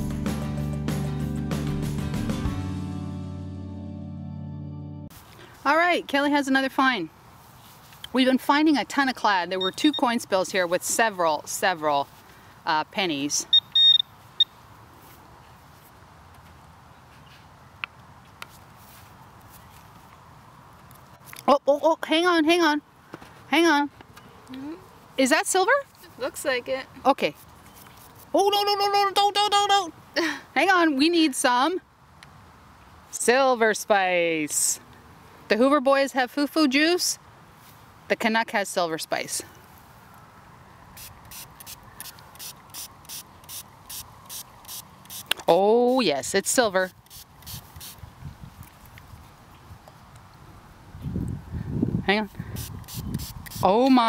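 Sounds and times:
faint outdoor background: 0.0s - 54.0s
metal detector beep: 9.5s - 10.2s, 13.5s - 14.6s
spray bottle spritzing: 42.4s - 45.4s, 46.9s - 48.0s, 52.6s - 53.7s.

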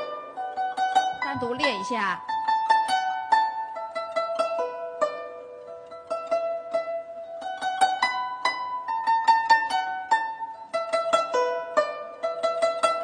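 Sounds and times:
guzheng plucked melody: 0.0s - 13.0s.

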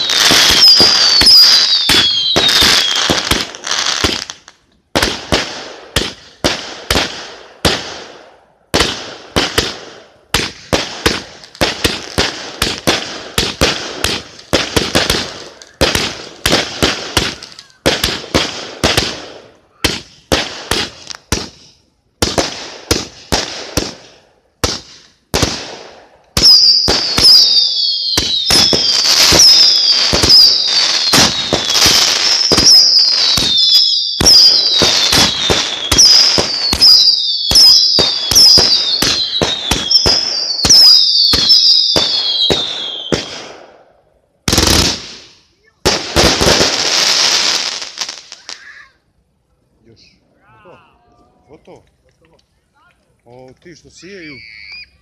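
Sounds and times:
firework whistles: 0.0s - 4.4s, 8.8s - 49.0s, 53.9s - 55.0s
firework bangs: 0.0s - 48.9s
firework crackling: 0.0s - 49.3s
firework volley: 0.0s - 55.0s.

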